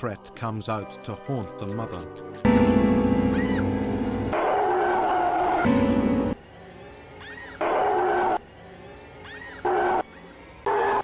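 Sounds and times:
faint chirps: 0.0s - 4.4s, 5.5s - 11.0s
loud steady pitched tone: 2.5s - 7.4s.

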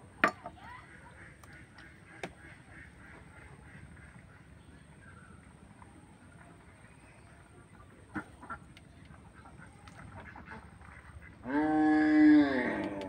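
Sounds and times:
long pitched animal call: 11.4s - 13.0s.

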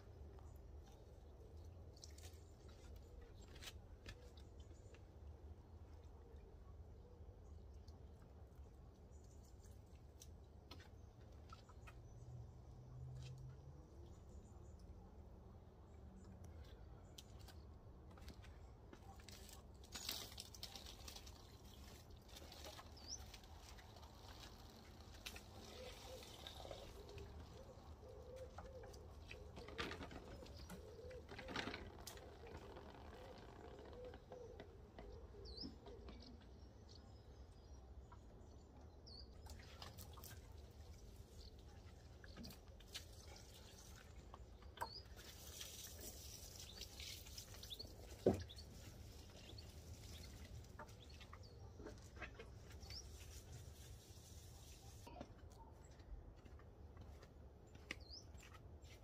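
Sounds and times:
small birds chirping: 9.0s - 56.0s, 57.0s - 59.0s
pigeon cooing: 25.7s - 32.1s.

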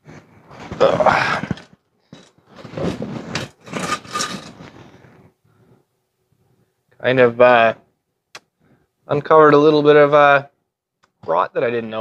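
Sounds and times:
scraping on steel: 1.5s - 5.2s.

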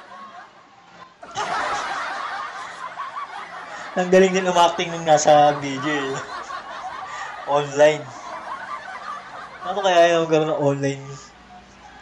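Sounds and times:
stifled snickering: 1.2s - 9.8s.

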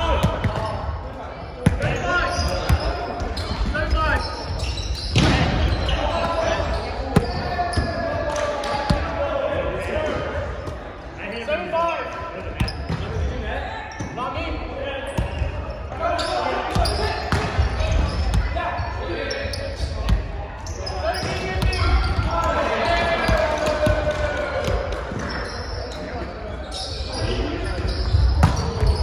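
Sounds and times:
players shouting and chatting: 0.0s - 29.0s.

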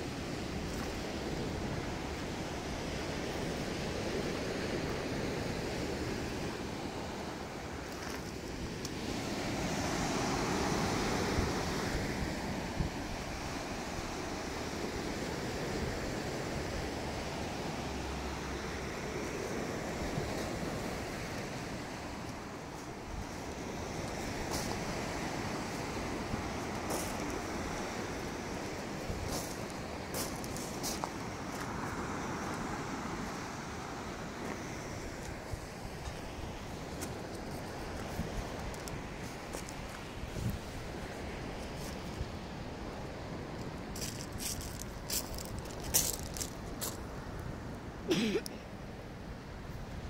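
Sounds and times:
wind rumbling on microphone: 0.0s - 48.0s
small waves breaking on beach: 0.0s - 50.0s
wind on microphone: 32.3s - 47.6s.

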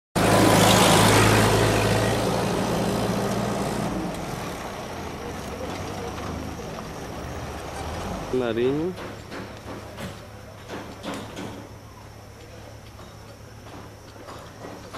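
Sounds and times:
vehicle engine running: 0.2s - 10.5s
low street noise: 0.2s - 14.9s.

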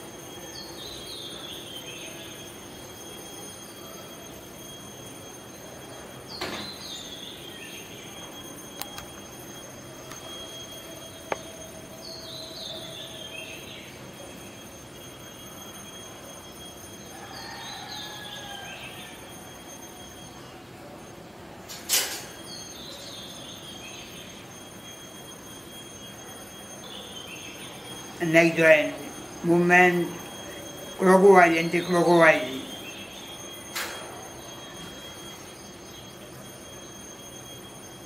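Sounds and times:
faint steady hum: 0.0s - 38.0s.

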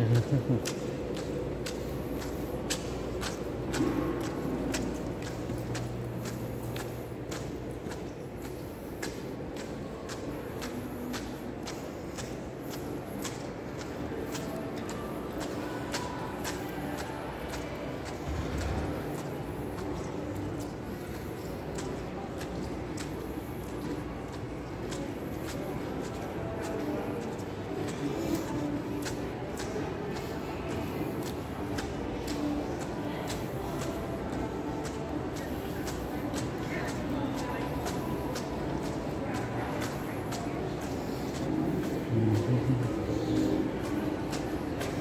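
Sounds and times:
indoor hall hum: 0.0s - 45.0s
footsteps on tile floor: 0.3s - 45.0s.

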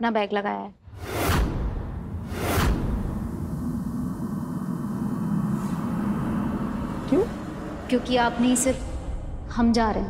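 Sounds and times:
swishing whoosh: 0.9s - 9.3s
low music drone: 1.6s - 10.0s.

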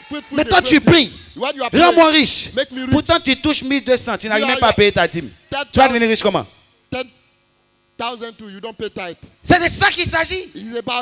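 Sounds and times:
man speaking: 0.0s - 7.2s, 8.0s - 11.0s
electrical mains hum: 0.0s - 11.0s.

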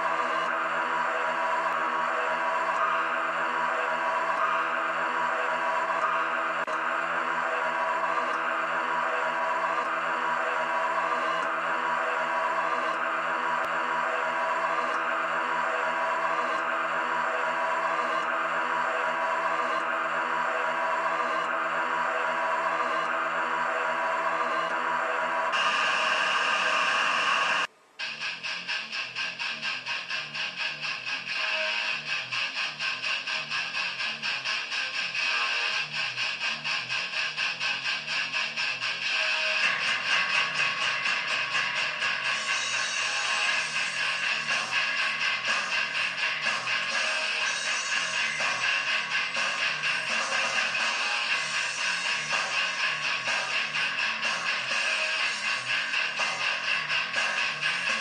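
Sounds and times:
pulsing music with electric guitar: 0.0s - 58.0s.

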